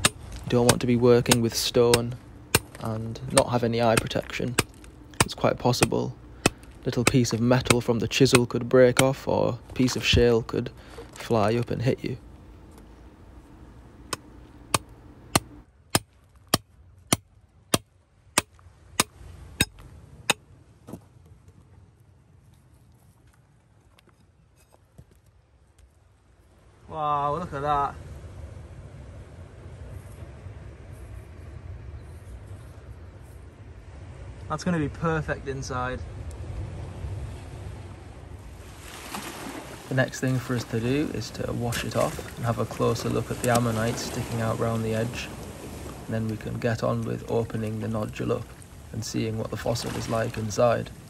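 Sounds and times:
hammer striking steel chisel: 0.0s - 9.2s
surf on rocky shore: 0.0s - 15.5s, 34.0s - 51.0s
wind rumbling on microphone: 27.5s - 51.0s.

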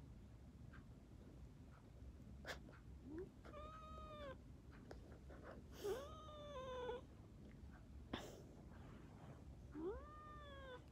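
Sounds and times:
cat meowing: 3.2s - 4.4s, 5.8s - 7.0s, 9.8s - 10.9s.

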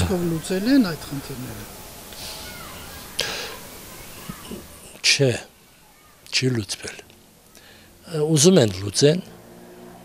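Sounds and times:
man speaking: 0.0s - 1.7s, 5.0s - 5.5s, 6.3s - 7.1s, 8.0s - 9.3s.

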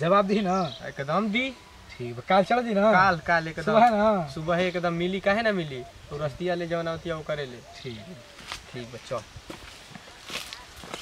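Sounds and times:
soft footsteps and shuffling: 7.8s - 11.0s.

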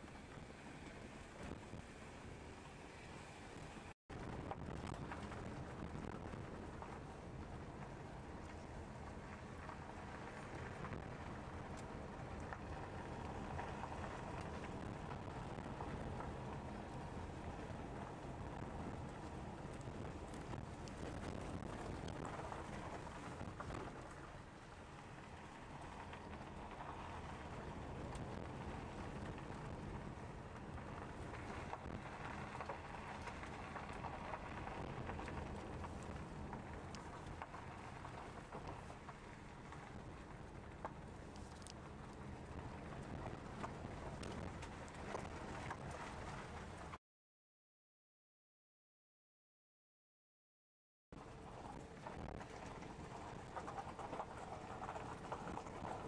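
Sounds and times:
car road and engine noise: 0.0s - 46.9s, 51.2s - 56.0s.

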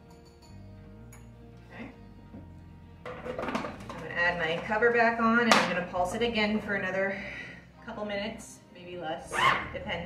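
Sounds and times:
faint background music: 0.0s - 10.0s
plastic cover clattering onto bowl: 3.1s - 4.0s.

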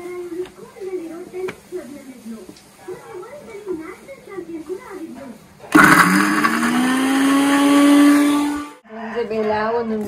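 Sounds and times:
mixer grinder motor grinding: 5.7s - 8.8s.

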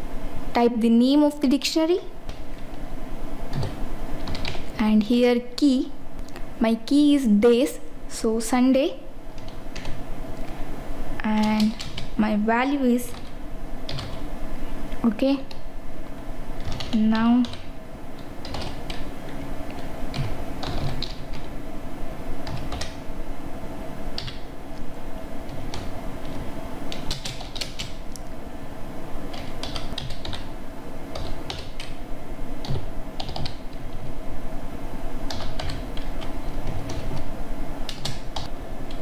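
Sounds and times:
steady low background hum: 0.0s - 39.0s
computer keyboard keystrokes: 3.5s - 4.7s, 9.4s - 10.0s, 11.3s - 13.3s, 13.9s - 14.2s, 16.6s - 21.5s, 22.4s - 23.0s, 24.2s - 24.5s, 25.5s - 28.0s, 29.3s - 30.5s, 31.1s - 32.0s, 32.6s - 34.0s, 35.3s - 37.3s, 37.9s - 39.0s.

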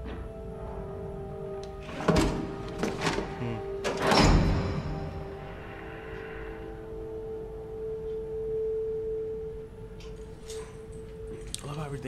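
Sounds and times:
low drone tone: 0.0s - 12.0s.

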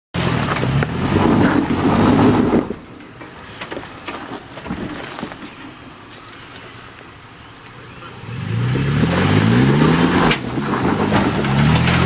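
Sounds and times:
engine working under load: 0.2s - 12.0s.

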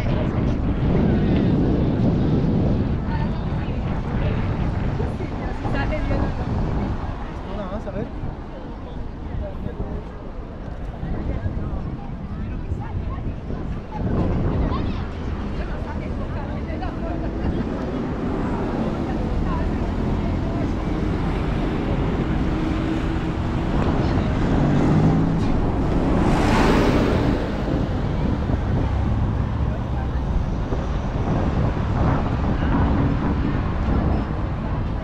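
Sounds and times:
city street traffic: 0.0s - 35.0s
people's voices: 0.0s - 35.0s
bus passing close by: 14.0s - 35.0s.

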